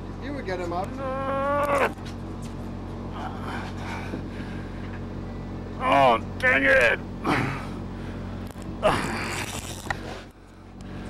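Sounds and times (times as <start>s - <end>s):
low hum: 0.0s - 11.0s
man groaning with effort: 0.9s - 2.0s, 7.2s - 7.8s, 8.8s - 9.8s.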